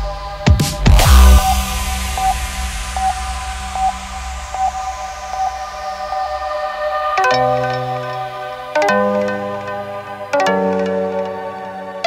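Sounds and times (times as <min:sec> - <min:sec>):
falling noise sweep: 0:00.6 - 0:07.2
short repeating synth note: 0:00.9 - 0:04.5.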